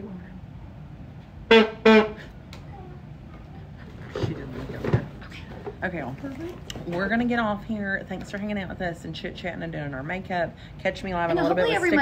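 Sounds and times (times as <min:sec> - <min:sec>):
buzzy horn blasts: 0:01.4 - 0:02.3.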